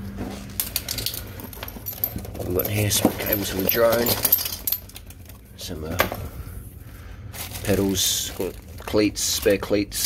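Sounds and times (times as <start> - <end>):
metal tools clinking onto wooden floor: 0.6 - 5.3.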